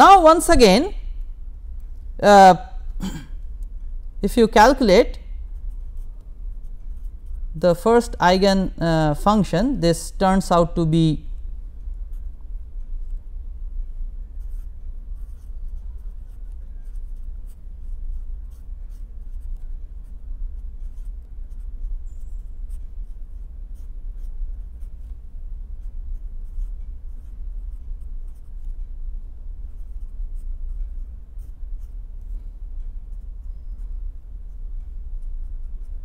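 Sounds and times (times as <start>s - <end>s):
steady low hum: 0.0s - 36.0s
marker pen writing on paper: 4.4s - 8.8s, 14.3s - 36.0s.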